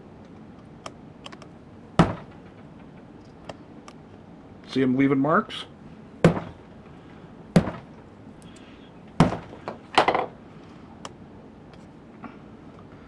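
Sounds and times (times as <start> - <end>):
fist punching wood: 2.0 - 2.4, 6.2 - 6.6, 7.6 - 7.9, 9.2 - 9.6
clatter of small knocks: 9.3 - 10.3.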